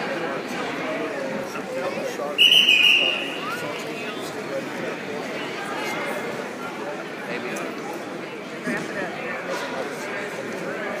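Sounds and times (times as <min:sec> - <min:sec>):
spectators chattering: 0:00.0 - 0:11.0
referee's whistle blast: 0:02.4 - 0:03.5.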